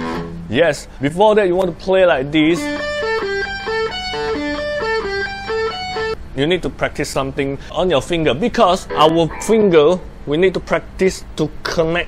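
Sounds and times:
electric guitar picked notes: 0.0 - 0.5, 2.4 - 6.2, 8.8 - 10.2.

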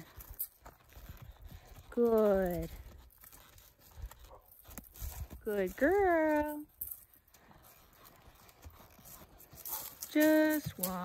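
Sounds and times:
horse hoofbeats on dirt: 0.0 - 11.0.

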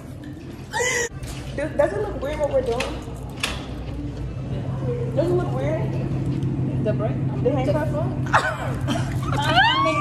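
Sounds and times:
steady low hum: 3.0 - 10.0.

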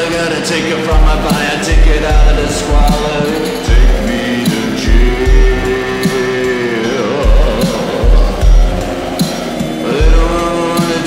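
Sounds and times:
indie rock music: 0.0 - 11.0
heavy kick drum thumps: 0.9 - 6.5, 7.2 - 10.6.

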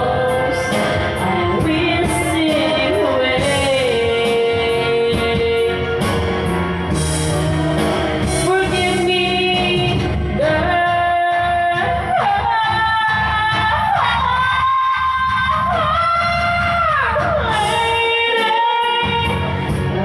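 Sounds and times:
woman singing karaoke: 0.0 - 6.2, 7.4 - 20.0
backing track music: 0.0 - 20.0.

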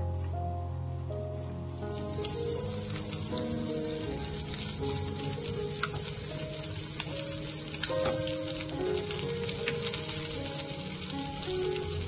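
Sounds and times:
background music: 0.0 - 12.0
food sizzling in oil: 1.4 - 12.0.

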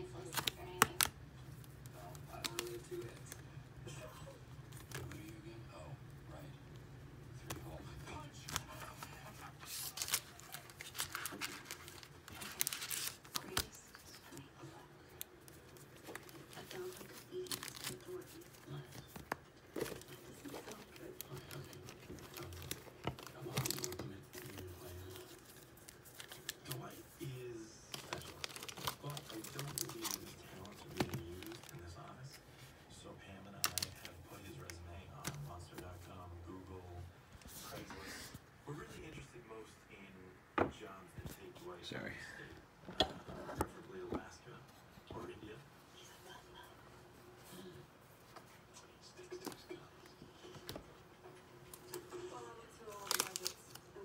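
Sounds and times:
foil wrappers crinkling: 0.1 - 3.4, 7.6 - 32.7, 33.5 - 35.9, 52.8 - 54.0.

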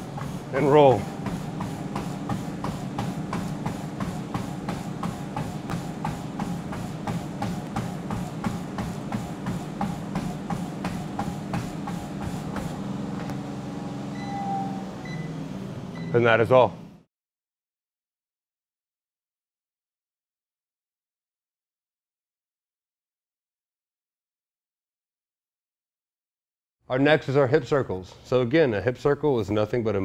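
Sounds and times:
running footfalls on treadmill: 0.0 - 15.2
treadmill motor hum: 0.0 - 17.0.

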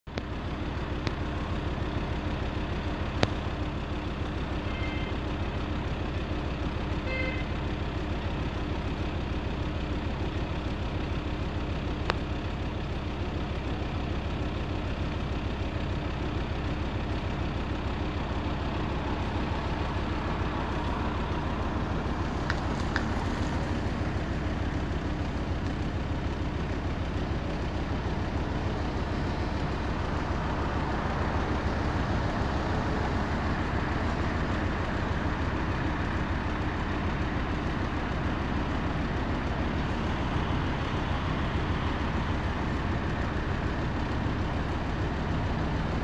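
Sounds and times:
traffic rumble: 0.1 - 46.0.

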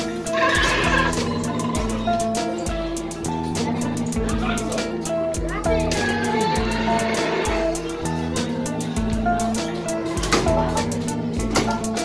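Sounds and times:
arcade game music: 0.0 - 12.0.

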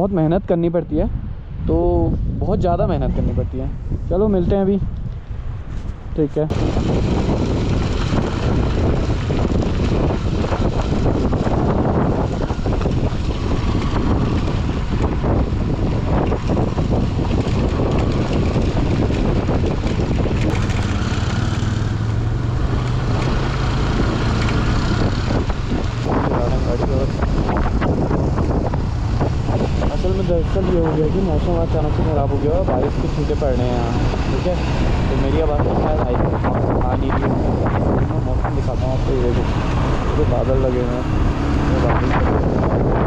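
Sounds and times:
wind buffeting on microphone: 0.0 - 43.0
motorcycle engine running: 6.5 - 43.0
knocks and rattles: 7.5 - 21.5.

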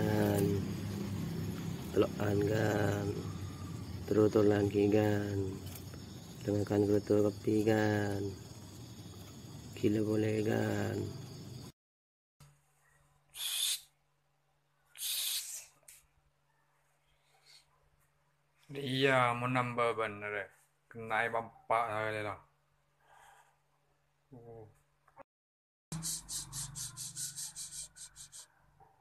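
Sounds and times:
bird harsh hissy call: 13.3 - 13.9, 15.0 - 15.7, 26.0 - 28.4
rhythmic scratchy rubbing: 25.9 - 28.4.

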